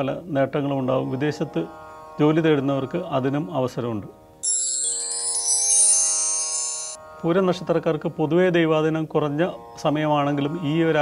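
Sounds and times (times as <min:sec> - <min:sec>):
shimmering bell chime: 0:04.4 - 0:07.0.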